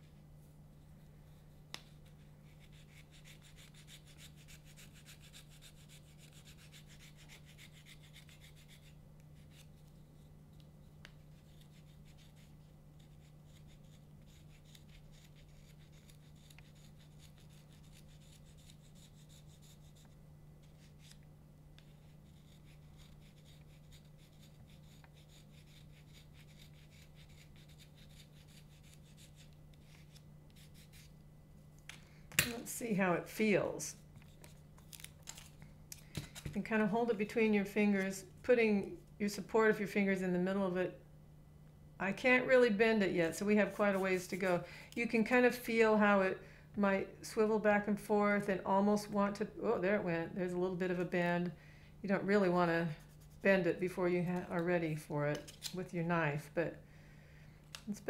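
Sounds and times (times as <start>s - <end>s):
knife scraping cane: 11.4s - 19.8s.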